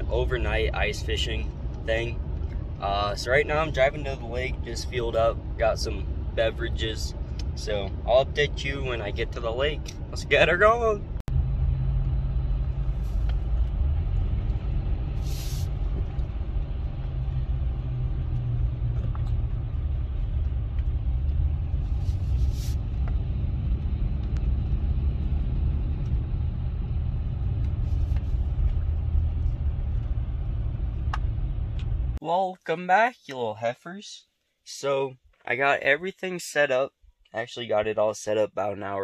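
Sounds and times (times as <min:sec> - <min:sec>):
truck engine and tyres rumbling: 0:00.0 - 0:32.3
brief high hisses: 0:15.2 - 0:15.7.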